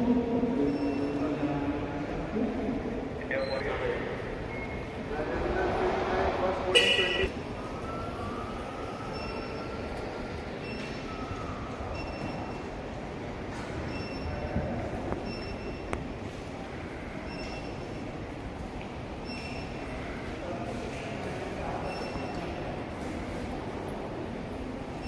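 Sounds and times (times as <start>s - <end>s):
terminal hall hum and hiss: 0.0s - 25.0s
short high beeps: 6.8s - 8.4s.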